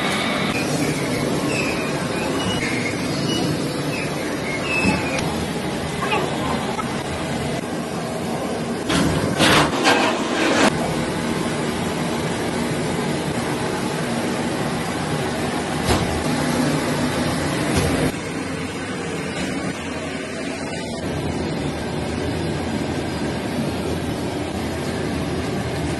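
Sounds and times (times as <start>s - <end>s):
factory machinery humming: 0.0s - 25.9s.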